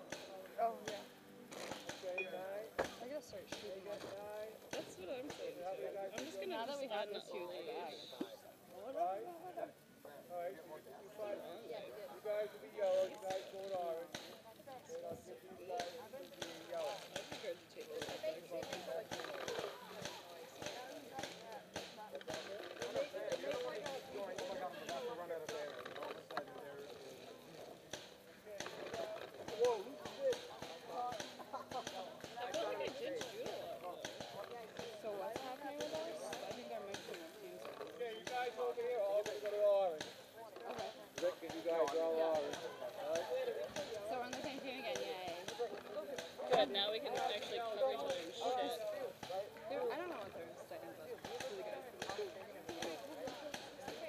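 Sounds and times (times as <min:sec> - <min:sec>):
muffled voices talking: 0:00.0 - 0:54.0.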